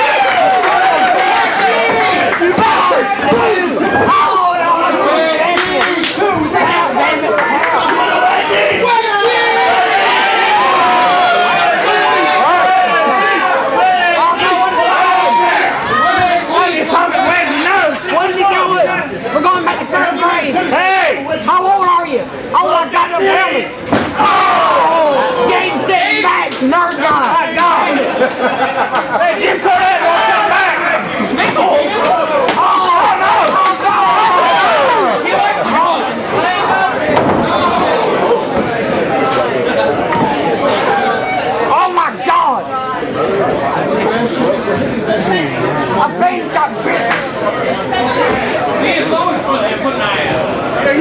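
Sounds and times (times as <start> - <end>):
people shouting: 0.0 - 21.4, 22.6 - 28.0, 29.1 - 42.6
crowd chatter: 0.0 - 51.0.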